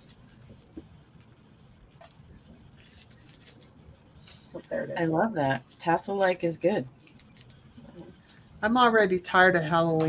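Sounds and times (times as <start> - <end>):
fabric rustling: 0.0 - 1.3, 1.9 - 8.3.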